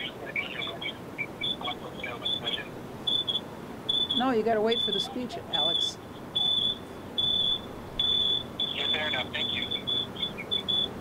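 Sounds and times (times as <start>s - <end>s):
high electronic beeps: 0.0s - 11.0s.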